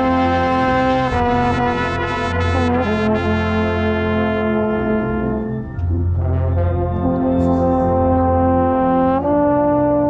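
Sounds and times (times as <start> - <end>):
loud trombone: 0.0 - 10.0
marching band brass chords: 0.0 - 10.0.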